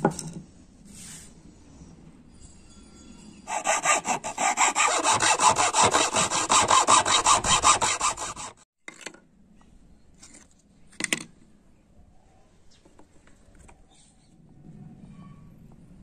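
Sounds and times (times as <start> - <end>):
hand saw cutting wood: 3.5 - 8.6.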